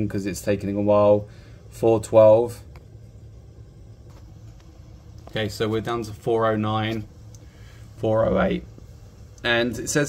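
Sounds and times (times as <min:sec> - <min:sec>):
faint background noise: 0:00.0 - 0:10.0
steady low hum: 0:00.0 - 0:10.0.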